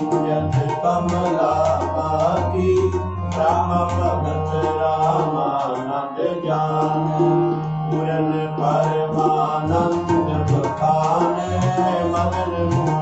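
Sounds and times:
harmonium chords: 0.0s - 13.0s
person singing devotional vocal: 0.0s - 13.0s
tabla strokes: 8.9s - 13.0s.

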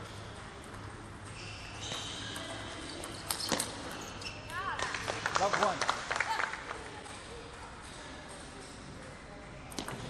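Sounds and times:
table tennis ball bouncing: 0.0s - 5.2s, 9.7s - 10.0s
shoes squeaking on floor: 1.3s - 4.8s.

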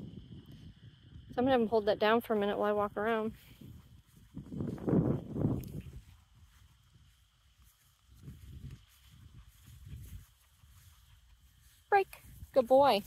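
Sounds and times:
footsteps on grass: 3.2s - 13.0s.

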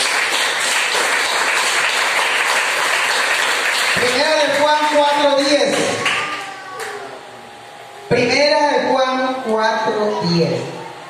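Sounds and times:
spoken word echoing in hall: 4.0s - 11.0s.

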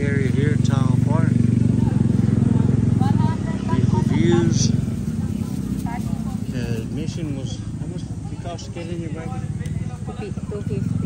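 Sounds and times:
people talking: 0.0s - 11.0s
small engine running: 0.0s - 11.0s.

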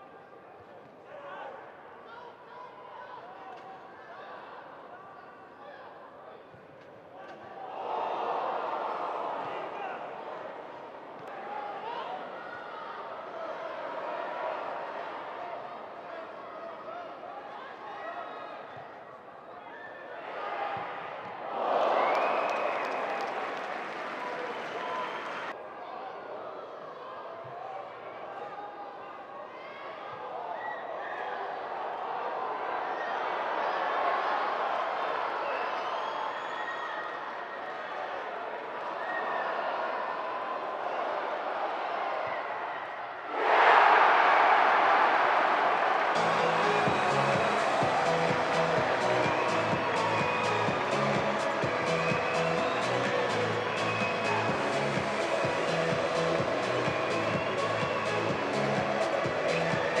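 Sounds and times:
stadium ambience: 0.0s - 60.0s
players shouting: 43.3s - 60.0s
background music with steady beat: 46.2s - 60.0s.

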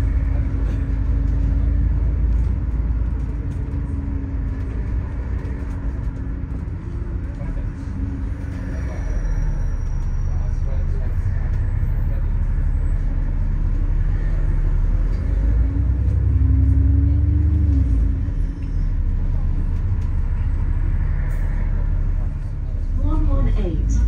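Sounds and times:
bus engine and road rumble: 0.0s - 24.0s
engine whine: 0.0s - 24.0s.

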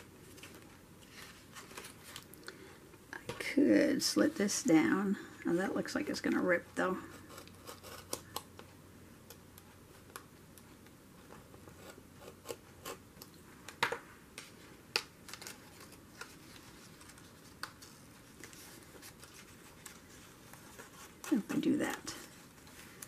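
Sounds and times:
craft knife scratching paper: 7.1s - 8.3s.

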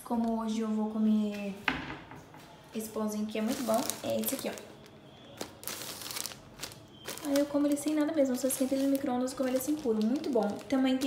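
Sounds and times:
plastic bag crinkling: 3.3s - 11.0s.

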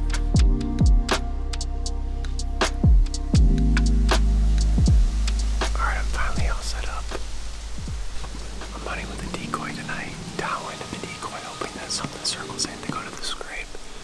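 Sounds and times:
background music: 0.0s - 14.0s
man whispering: 5.6s - 7.3s, 8.6s - 14.0s.

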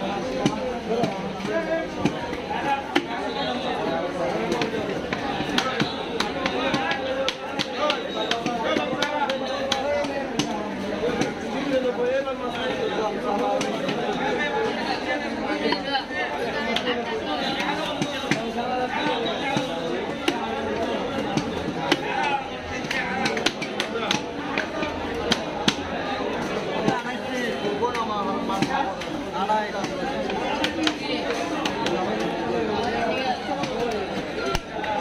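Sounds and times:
chatter of voices: 0.0s - 35.0s
people talking: 0.0s - 35.0s.

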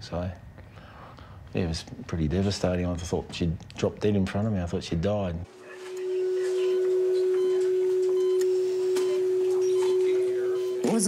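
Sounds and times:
faint high-pitched beeps: 5.9s - 11.0s.

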